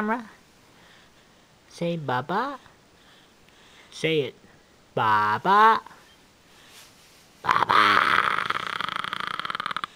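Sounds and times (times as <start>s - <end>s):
infant raspy vocalization: 7.4s - 9.9s.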